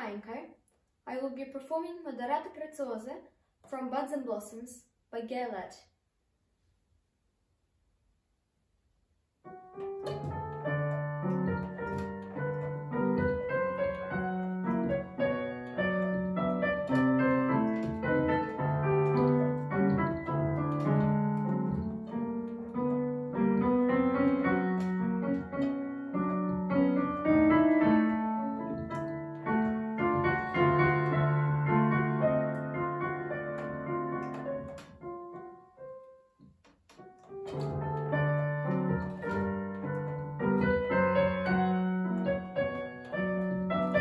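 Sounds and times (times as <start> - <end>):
solo piano piece: 9.4 - 44.0.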